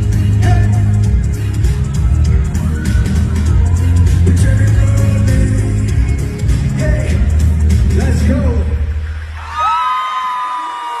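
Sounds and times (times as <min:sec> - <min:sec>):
backing music: 0:00.0 - 0:09.4
crowd screaming and cheering: 0:00.0 - 0:11.0.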